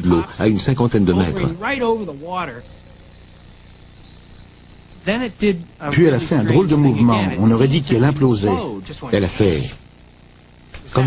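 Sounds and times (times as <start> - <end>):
man speaking: 0.0 - 2.7, 5.0 - 9.8
crickets trilling: 0.0 - 11.0.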